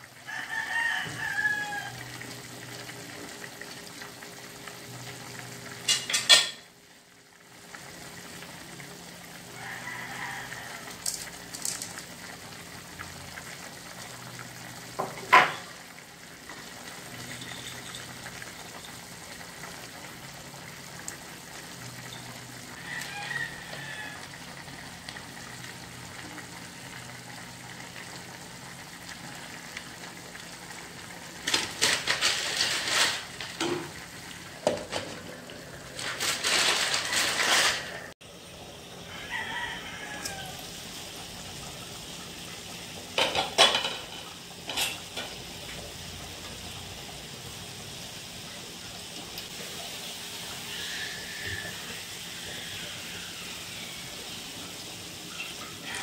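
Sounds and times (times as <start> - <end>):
pot simmering: 0.0 - 56.0
rooster crowing: 0.2 - 2.3, 9.5 - 11.2, 22.7 - 24.8, 39.0 - 40.8, 50.4 - 54.7, 55.3 - 56.0.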